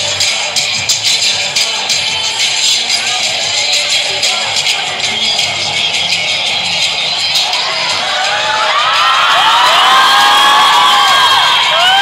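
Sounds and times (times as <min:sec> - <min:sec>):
crowd roar: 0:07.2 - 0:12.0
audience cheering and whooping: 0:07.4 - 0:12.0.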